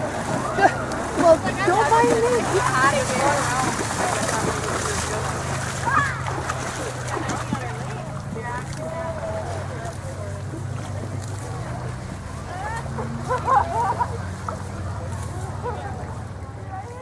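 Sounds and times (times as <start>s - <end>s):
scattered voices: 0.0s - 17.0s.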